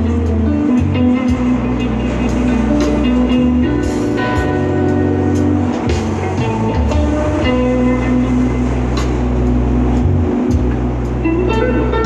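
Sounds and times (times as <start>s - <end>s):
deep bass line: 0.0s - 12.0s
guitar playing: 0.0s - 12.0s
subway train running: 0.0s - 12.0s.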